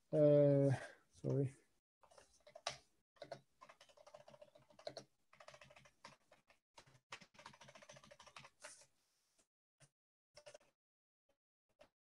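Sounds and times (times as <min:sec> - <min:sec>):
typing on computer keyboard: 0:02.0 - 0:08.8, 0:10.4 - 0:10.7.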